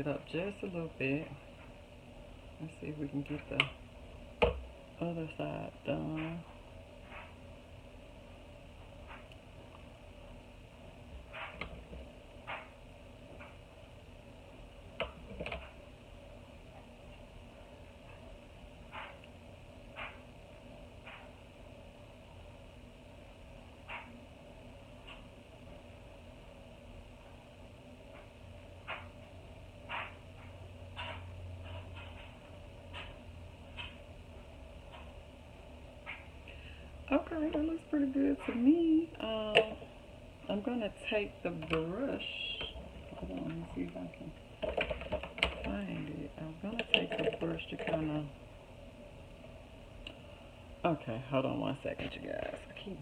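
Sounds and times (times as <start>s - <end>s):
room hum: 0.0s - 53.0s.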